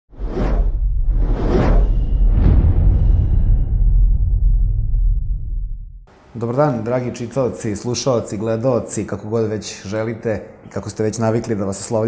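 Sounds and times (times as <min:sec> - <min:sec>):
whoosh sweeps: 0:00.1 - 0:05.5
deep bass rumble: 0:00.2 - 0:06.1.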